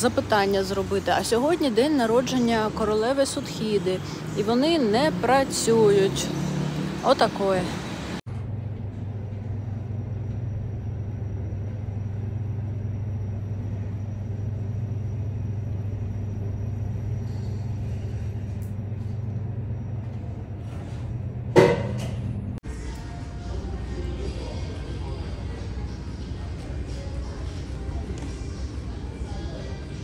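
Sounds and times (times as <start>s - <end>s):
steady low hum: 7.8s - 30.0s.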